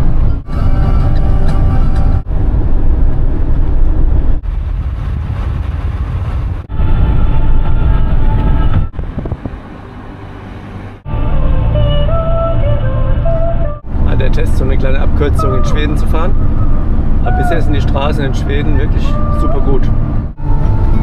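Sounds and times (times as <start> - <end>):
road and wind noise of vehicle: 0.0 - 21.0.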